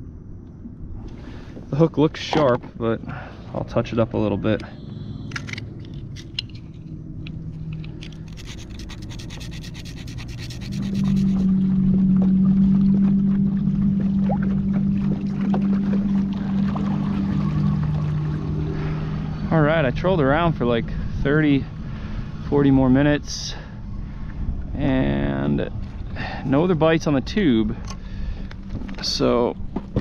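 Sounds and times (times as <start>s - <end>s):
low motor hum: 0.0s - 30.0s
sharpener scraping hook: 7.8s - 11.4s.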